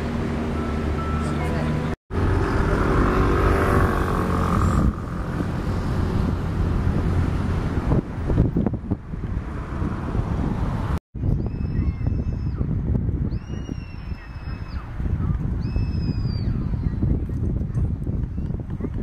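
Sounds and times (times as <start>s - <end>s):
wind: 0.0s - 19.0s.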